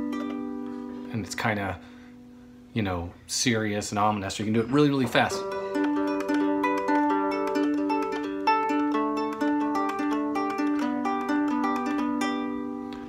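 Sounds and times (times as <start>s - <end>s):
fingerpicked cigar box guitar: 0.0s - 1.8s, 4.6s - 13.0s.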